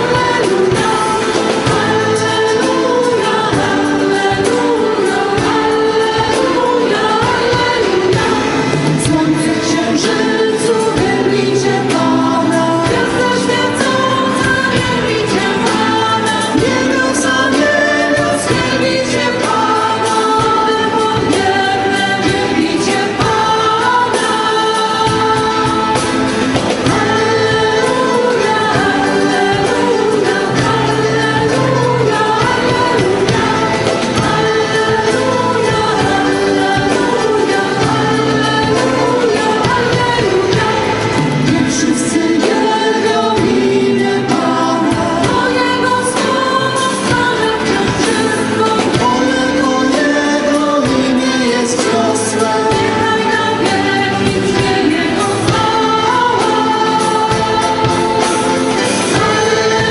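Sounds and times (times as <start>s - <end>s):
band accompaniment: 0.0s - 59.9s
worship vocal group singing: 0.0s - 59.9s.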